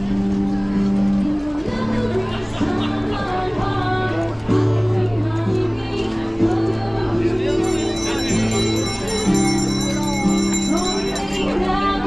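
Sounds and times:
guitar: 0:00.0 - 0:12.0.

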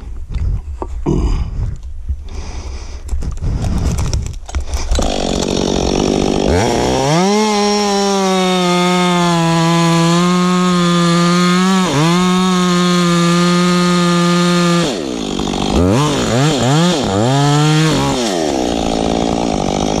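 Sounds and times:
chainsaw cutting log: 0:03.5 - 0:20.0.

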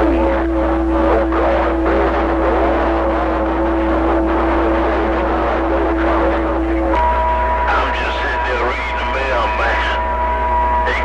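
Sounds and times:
radio static hiss: 0:00.0 - 0:10.2, 0:10.8 - 0:11.0
low hum: 0:00.0 - 0:11.0.

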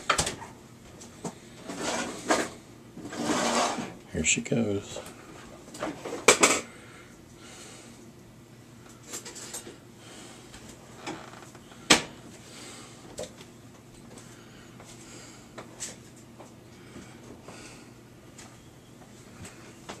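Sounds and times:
faint steady hum: 0:00.0 - 0:20.0.

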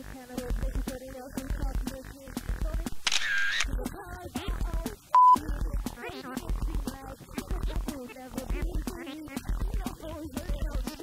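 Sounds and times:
background music with beat: 0:00.0 - 0:11.0.

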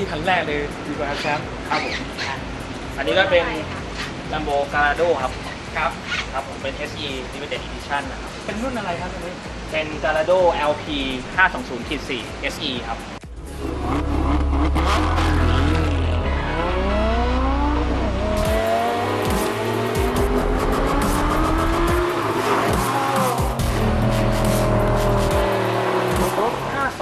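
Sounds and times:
background music with deep bass: 0:00.0 - 0:27.0
sports car engine revving: 0:13.4 - 0:27.0.

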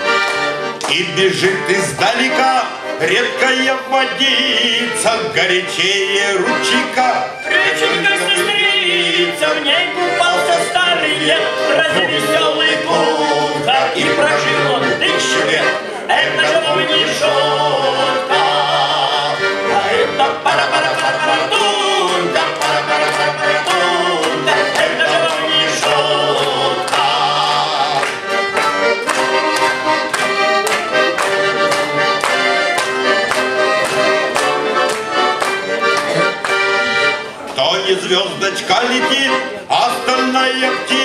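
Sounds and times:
accordion playing folk music: 0:00.0 - 0:41.0.

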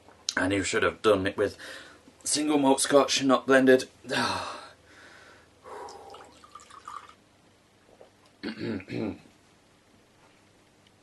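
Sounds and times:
liquid gurgling into a glass: 0:05.9 - 0:07.2.

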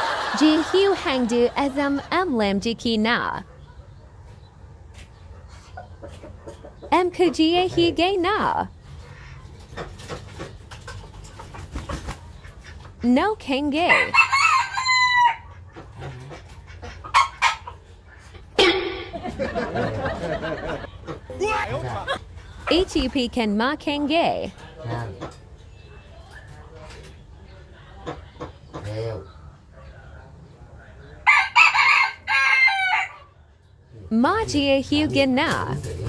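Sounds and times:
rooster crowing: 0:13.9 - 0:15.5, 0:31.2 - 0:33.3.

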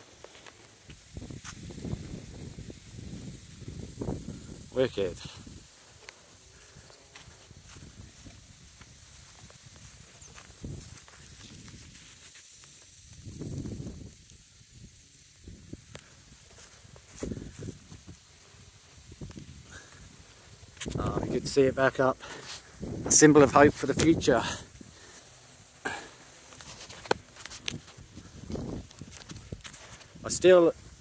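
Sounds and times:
gusty wind on microphone: 0:00.9 - 0:05.7, 0:07.4 - 0:12.0, 0:13.0 - 0:15.9, 0:16.8 - 0:21.7, 0:22.7 - 0:24.9, 0:27.6 - 0:31.0
light rustling: 0:22.2 - 0:30.3.

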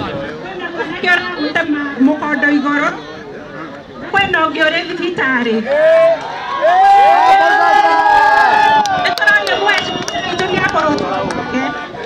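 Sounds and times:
crowd chatter: 0:00.0 - 0:12.0
people talking close by: 0:00.0 - 0:12.0.

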